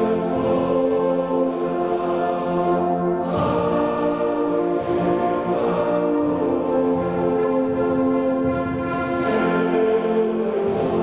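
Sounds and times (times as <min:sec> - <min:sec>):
men's choir singing: 0:00.0 - 0:11.0
brass band fanfare: 0:01.3 - 0:11.0.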